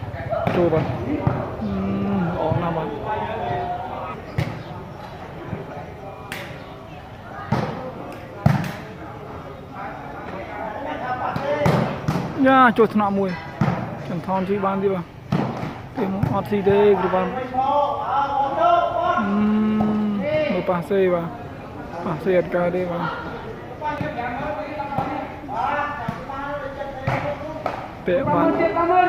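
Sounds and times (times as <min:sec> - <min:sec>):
person holding a long call: 0:19.0 - 0:20.3.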